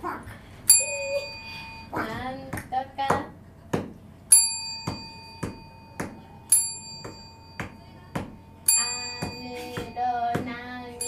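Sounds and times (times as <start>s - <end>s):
bright bell ding: 4.3s - 10.3s.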